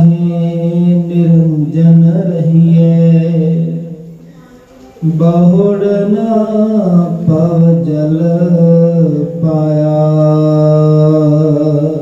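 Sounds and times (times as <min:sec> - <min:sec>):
man chanting: 0:00.0 - 0:04.2, 0:05.0 - 0:12.0.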